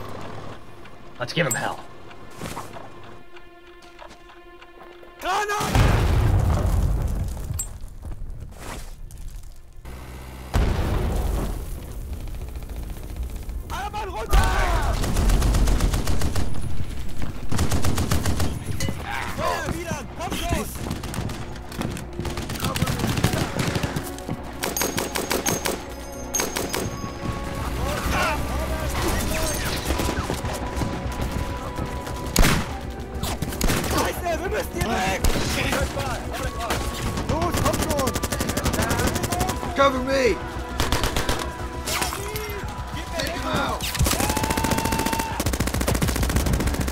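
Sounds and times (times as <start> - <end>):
machine-gun fire: 14.4 - 16.7, 17.5 - 18.7, 20.8 - 27.0, 43.9 - 46.9.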